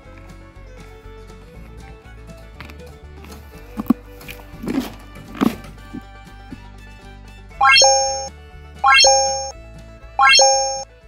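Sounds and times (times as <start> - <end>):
synthetic rising chime: 7.6 - 9.5, 10.2 - 10.8.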